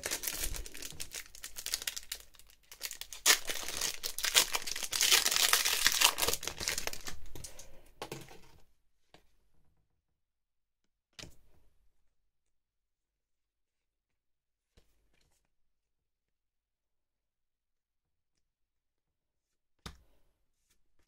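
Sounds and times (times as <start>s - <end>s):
foil wrapper crinkling and tearing: 0.0s - 7.4s.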